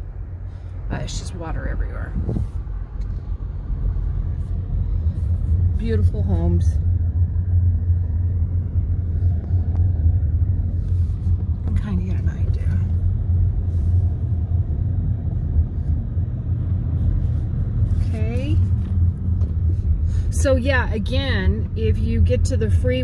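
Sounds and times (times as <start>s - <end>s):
car road and engine rumble: 0.0s - 23.0s.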